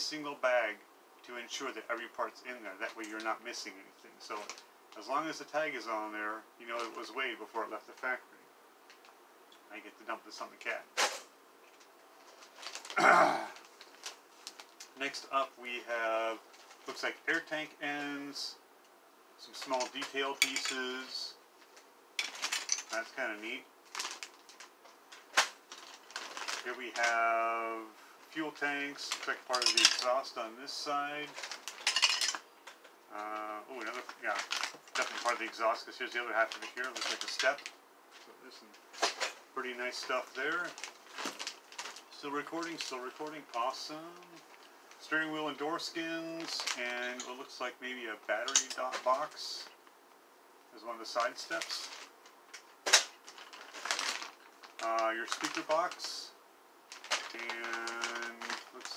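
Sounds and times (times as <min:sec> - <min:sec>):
plastic bags crinkling: 0:11.7 - 0:15.2, 0:19.4 - 0:27.4, 0:28.6 - 0:30.4, 0:31.0 - 0:47.6, 0:48.3 - 0:49.9, 0:51.0 - 0:56.2, 0:56.9 - 0:58.9.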